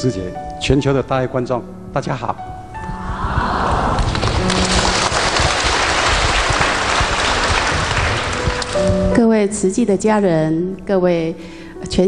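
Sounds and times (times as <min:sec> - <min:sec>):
large audience applauding: 0:03.0 - 0:09.1.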